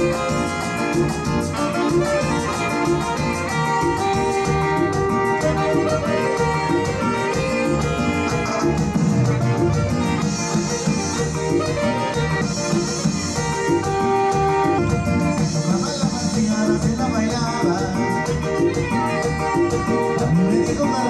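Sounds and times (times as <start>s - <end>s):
dance band playing: 0.0s - 21.0s.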